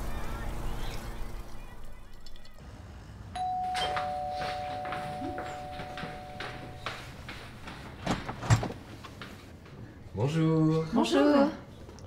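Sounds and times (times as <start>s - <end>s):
two-tone doorbell chime: 3.4s - 7.3s
footsteps on hard floor: 3.7s - 9.8s.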